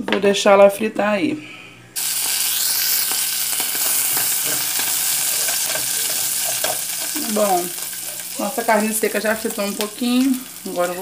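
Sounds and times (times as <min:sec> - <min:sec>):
meat sizzling in oil: 0:02.0 - 0:11.0.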